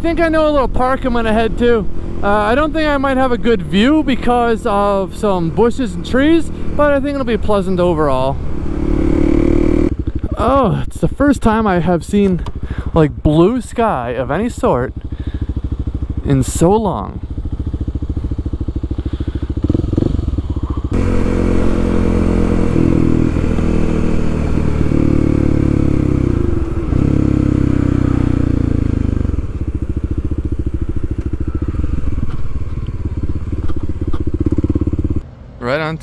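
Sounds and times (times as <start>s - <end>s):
motorcycle engine running: 0.0s - 35.2s.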